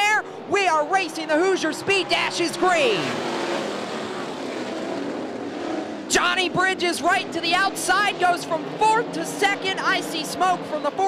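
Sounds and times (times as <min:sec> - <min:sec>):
sprint car engines racing: 0:00.0 - 0:11.0.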